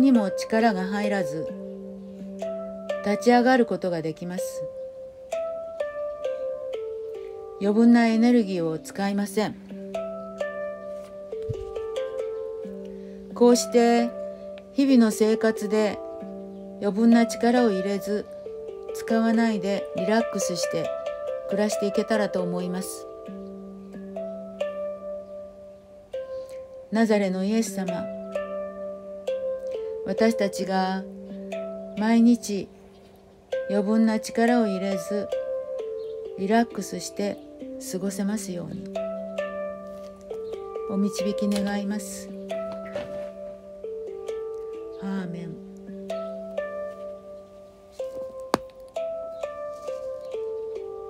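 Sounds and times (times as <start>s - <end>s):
handpan notes ringing: 0.0s - 51.0s
sharp tap: 48.5s - 48.9s.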